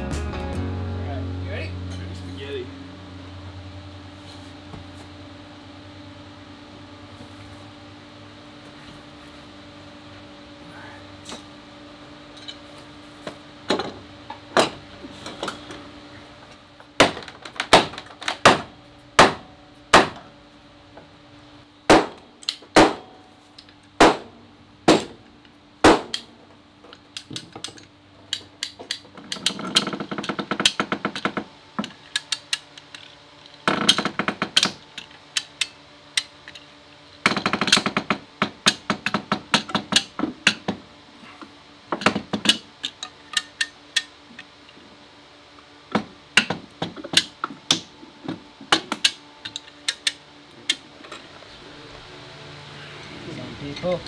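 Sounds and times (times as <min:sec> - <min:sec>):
clamps clicking and rattling: 0:26.9 - 0:36.7.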